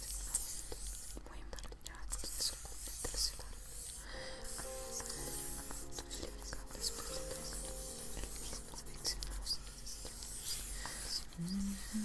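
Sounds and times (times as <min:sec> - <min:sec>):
soft scratching and rustling: 0:00.0 - 0:12.0
whisper-like hisses: 0:00.0 - 0:12.0.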